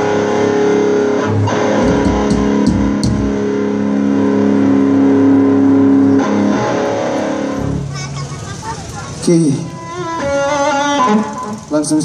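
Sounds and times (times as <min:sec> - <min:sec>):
live band chord: 0:00.0 - 0:08.2, 0:09.2 - 0:12.0
electric guitar: 0:00.0 - 0:12.0
low bass notes: 0:00.0 - 0:12.0.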